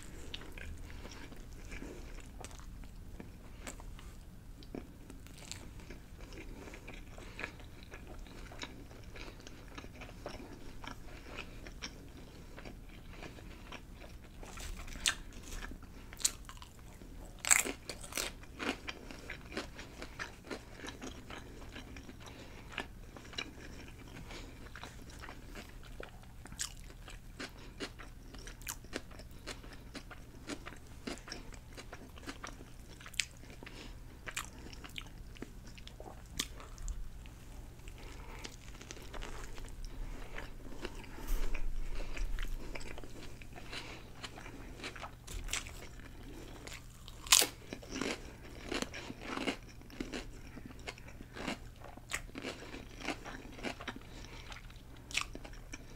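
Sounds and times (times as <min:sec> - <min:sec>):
wet chewing with crunches: 0:00.0 - 0:55.9.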